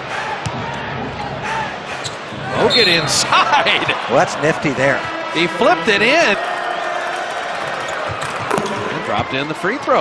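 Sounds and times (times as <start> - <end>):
crowd hubbub: 0.0 - 9.3.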